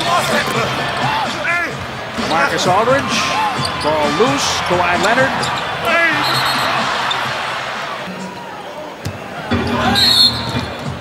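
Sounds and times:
commentator speaking: 0.0 - 6.6
crowd noise: 0.0 - 11.0.

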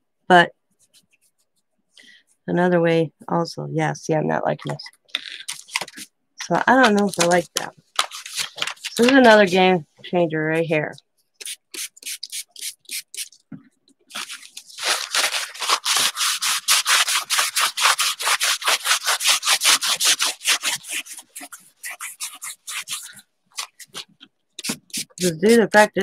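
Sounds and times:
cloth rubbing on canvas: 14.1 - 25.6.

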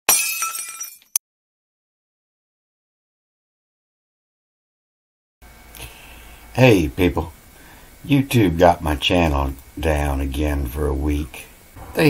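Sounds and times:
glass shattering: 0.1 - 1.2.

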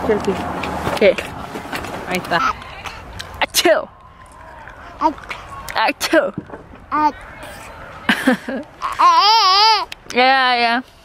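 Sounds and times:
toddler squealing: 8.8 - 9.9.

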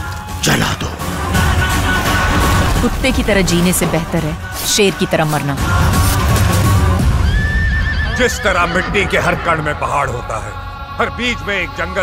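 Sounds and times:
film trailer music: 0.0 - 12.0
horse whinnying: 7.2 - 8.6.

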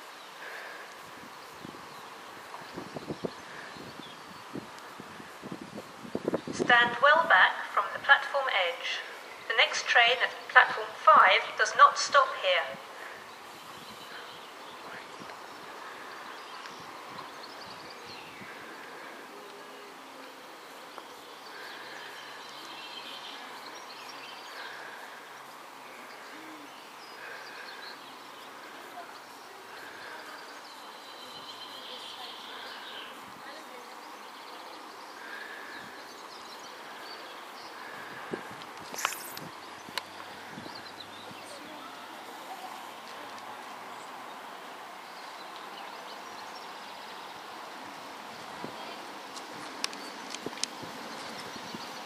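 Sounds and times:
birds calling: 0.0 - 6.6, 7.3 - 52.0.

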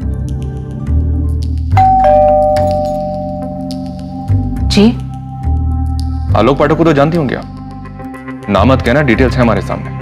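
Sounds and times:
low background music: 0.0 - 10.0
two-tone doorbell chime: 1.8 - 4.2.

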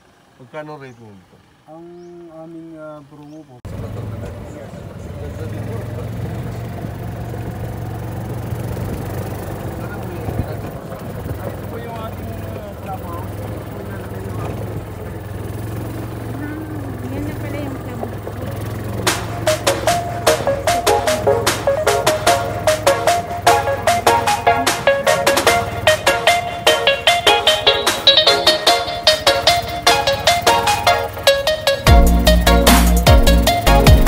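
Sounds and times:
golf cart humming: 0.0 - 34.0
people talking: 0.4 - 7.0, 9.6 - 15.0, 16.3 - 28.8
music with a beat: 19.0 - 34.0.

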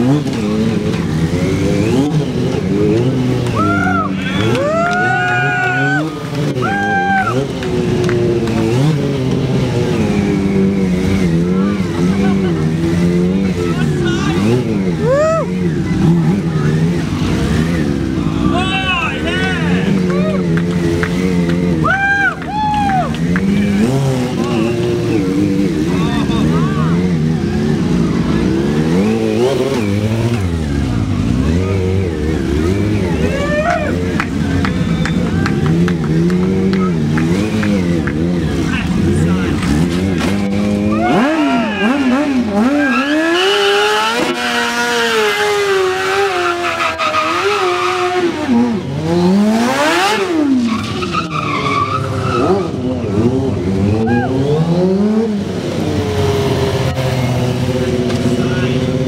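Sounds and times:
motorcycle engine revving hard: 0.0 - 21.9, 23.0 - 59.0.

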